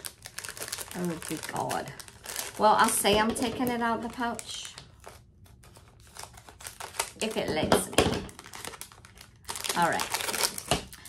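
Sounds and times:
packaging pouch crinkling: 0.0s - 7.6s, 8.2s - 11.0s.

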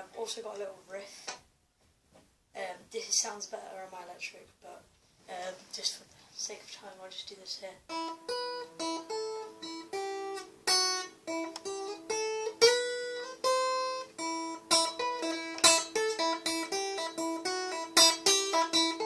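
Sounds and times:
acoustic guitar riff: 7.8s - 19.0s.

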